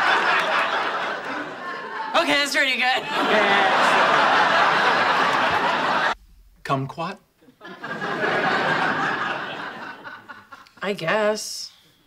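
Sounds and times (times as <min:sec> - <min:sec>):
studio audience laughing: 0:00.0 - 0:06.2, 0:07.6 - 0:10.8.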